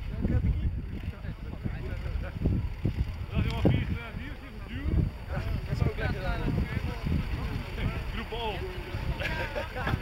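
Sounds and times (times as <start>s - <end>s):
people's voices: 0.0s - 10.0s
wind on microphone: 0.0s - 10.0s.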